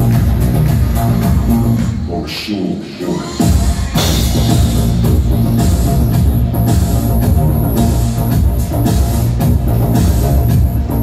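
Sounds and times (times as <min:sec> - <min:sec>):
drum kit beat: 0:00.0 - 0:01.9, 0:03.3 - 0:11.0.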